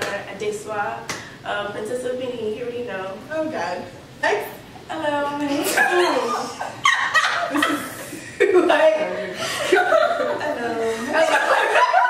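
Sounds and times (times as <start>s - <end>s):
women laughing and chattering: 5.5s - 12.0s.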